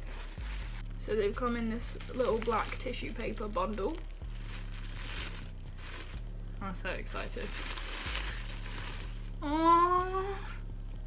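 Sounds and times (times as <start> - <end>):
tissue paper crinkling: 0.0 - 6.2, 7.1 - 9.4.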